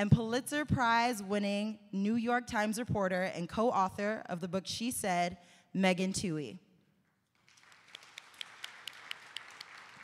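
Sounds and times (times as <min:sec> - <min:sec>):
audience applauding: 0:07.4 - 0:10.0
nearby hands clapping: 0:07.4 - 0:10.0.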